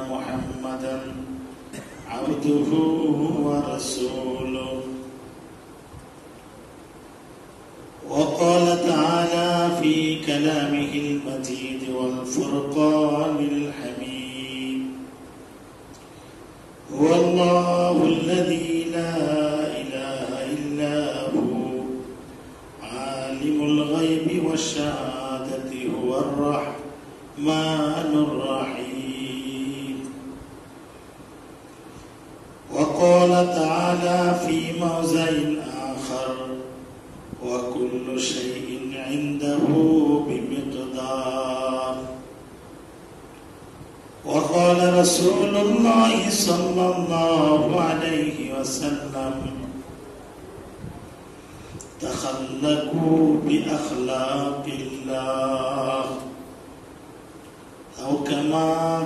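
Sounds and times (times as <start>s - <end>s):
man chanting recitation: 0.0s - 5.2s, 8.0s - 15.1s, 16.8s - 30.4s, 32.7s - 42.4s, 44.2s - 49.8s, 51.9s - 56.6s, 57.9s - 59.0s.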